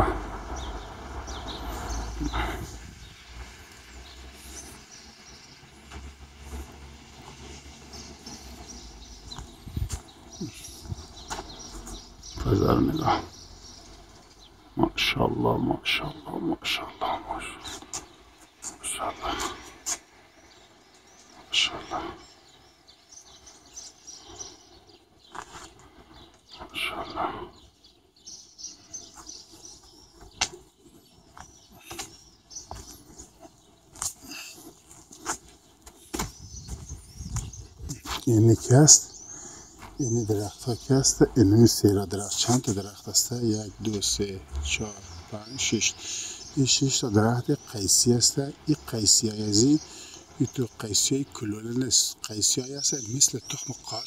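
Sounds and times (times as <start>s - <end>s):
small birds chirping: 0.0s - 54.0s.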